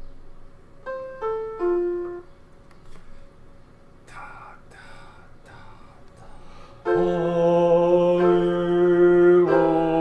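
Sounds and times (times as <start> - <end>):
piano notes descending: 0.8 - 2.5, 6.8 - 10.0.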